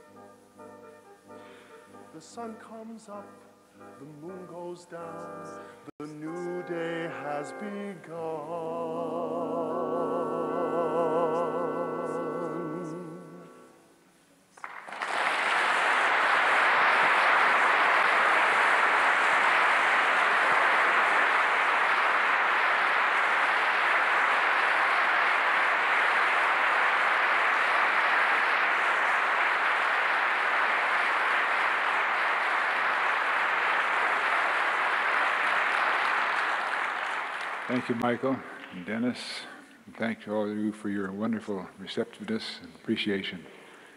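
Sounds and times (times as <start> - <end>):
audience applauding: 14.6 - 39.1.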